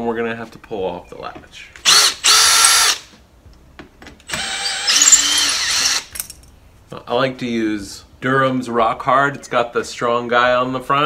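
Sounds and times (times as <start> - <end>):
cordless drill backing out a screw: 4.3 - 6.2.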